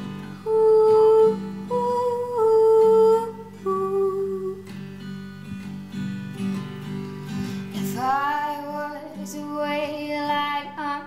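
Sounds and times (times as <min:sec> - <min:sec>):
plucked classical guitar: 0:00.0 - 0:11.0
woman humming: 0:00.4 - 0:04.7.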